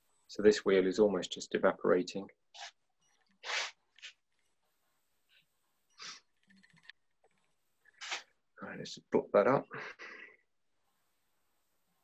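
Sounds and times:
person sniffing: 0:03.4 - 0:04.1, 0:06.0 - 0:06.3, 0:08.0 - 0:08.3.

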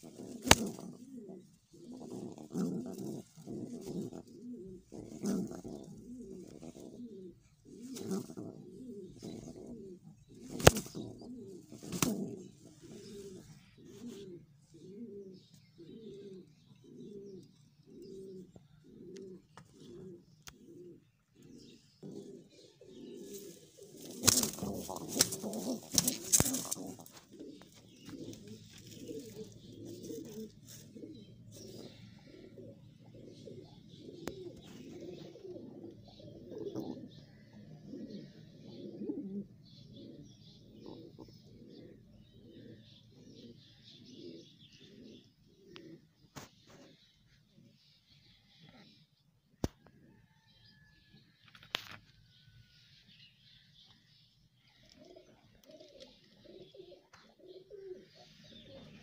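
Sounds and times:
wings rustling flurry: 0:00.0 - 0:06.9, 0:10.4 - 0:14.2, 0:23.2 - 0:31.8
pigeon cooing: 0:00.0 - 0:49.1, 0:54.7 - 0:59.0.

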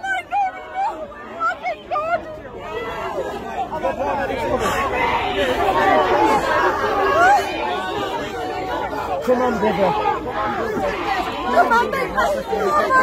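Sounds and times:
crowd babble: 0:00.0 - 0:13.0.

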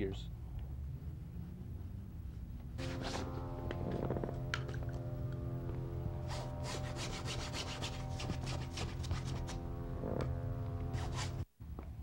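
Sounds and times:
steady low hum: 0:00.0 - 0:12.0
paintbrush scrubbing a surface: 0:06.3 - 0:09.6, 0:11.0 - 0:11.4.

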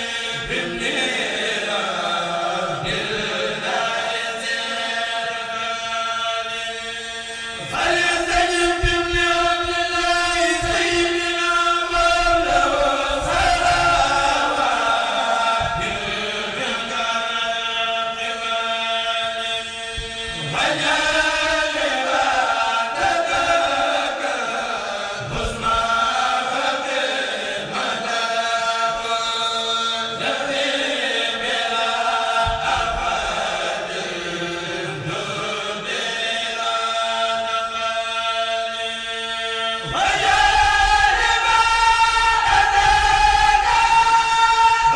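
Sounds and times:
group chanting in unison: 0:00.0 - 0:44.9.

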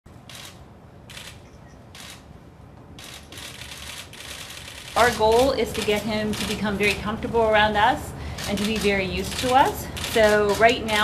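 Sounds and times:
camera shutters firing: 0:00.3 - 0:01.4.

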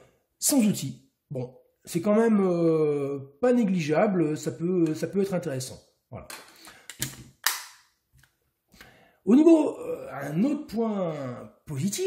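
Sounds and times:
pistol grip panel clicking: 0:06.9 - 0:07.8.

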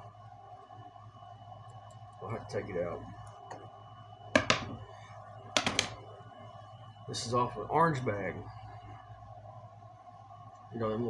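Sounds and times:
knocks on wooden workbench: 0:04.4 - 0:04.8.

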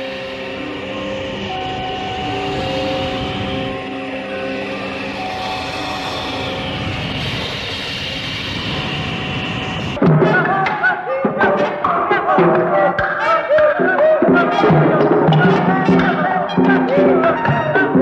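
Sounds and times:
dense wash of noise: 0:00.0 - 0:10.0
faint high sweep: 0:00.0 - 0:10.0
held electronic tones: 0:00.0 - 0:10.0.

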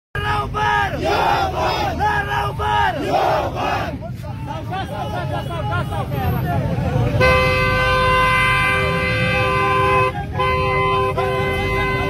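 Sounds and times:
crowd chanting in unison: 0:00.3 - 0:05.2.

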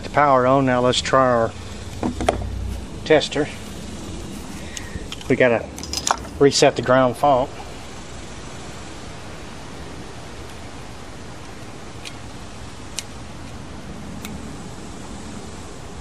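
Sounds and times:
steady hiss: 0:00.0 - 0:16.0.

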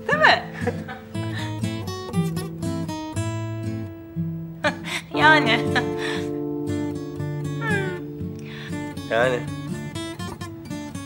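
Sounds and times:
soft acoustic guitar music: 0:00.0 - 0:11.0.

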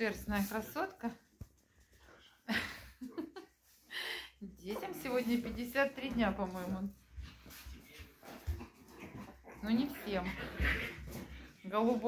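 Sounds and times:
puppies scuffling: 0:04.5 - 0:12.0.

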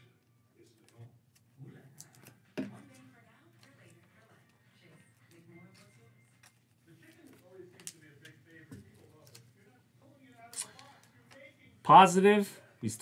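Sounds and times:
trading cards handled: 0:05.2 - 0:09.7.

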